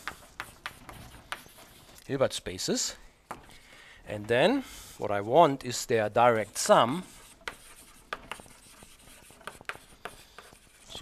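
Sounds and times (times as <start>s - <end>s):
chalk on blackboard: 0.0s - 2.0s, 6.4s - 11.0s.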